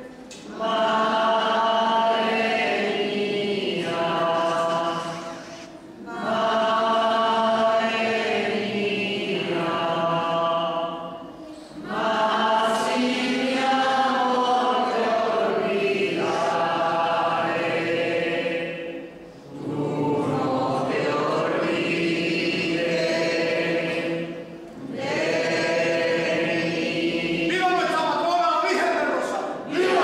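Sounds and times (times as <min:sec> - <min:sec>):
group singing a hymn: 0:00.0 - 0:30.0.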